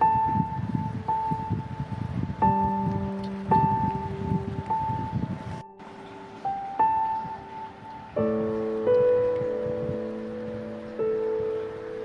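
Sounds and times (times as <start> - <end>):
slow soft piano chords: 0.0 - 12.0.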